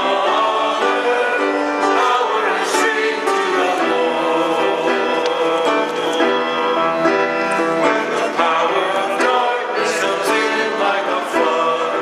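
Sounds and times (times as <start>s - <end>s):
choir and congregation singing: 0.0s - 12.0s
instrumental accompaniment: 0.0s - 12.0s.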